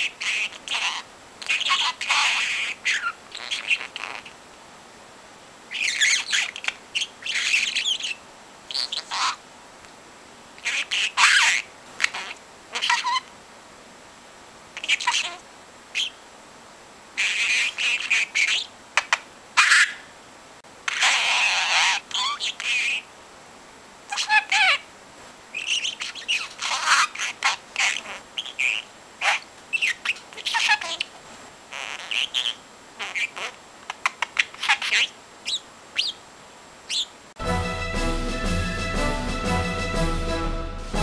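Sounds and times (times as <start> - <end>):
budgerigar chattering and warbling: 0.0 - 4.4, 5.7 - 9.4, 10.6 - 13.3, 14.8 - 15.4, 16.0 - 16.2, 17.2 - 20.1, 20.9 - 23.1, 24.1 - 24.8, 25.5 - 31.1, 31.7 - 36.2, 36.9 - 37.1
music: 37.4 - 41.0.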